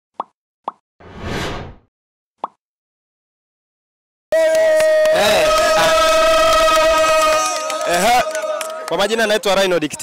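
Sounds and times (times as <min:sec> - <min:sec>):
whoosh: 0:01.0 - 0:01.8.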